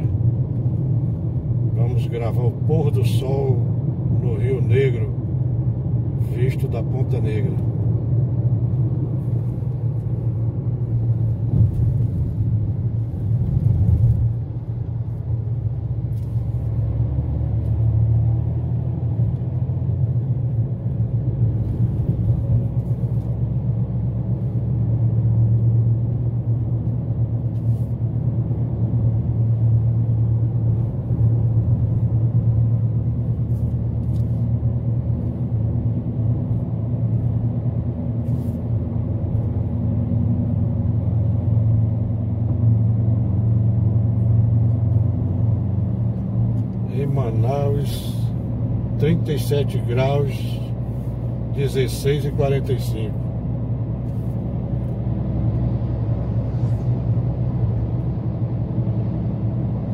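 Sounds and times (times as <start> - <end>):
car engine and road drone: 0.0 - 59.9.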